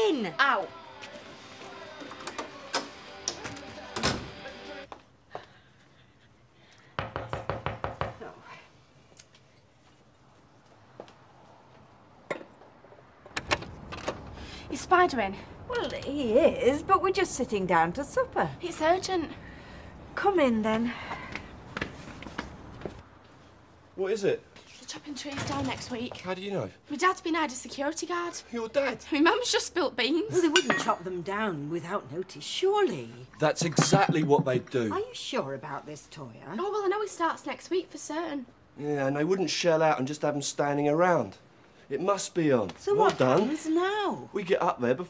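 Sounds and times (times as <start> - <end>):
urgent knocking on door: 7.0 - 8.2
footsteps: 9.3 - 12.0, 21.0 - 23.6.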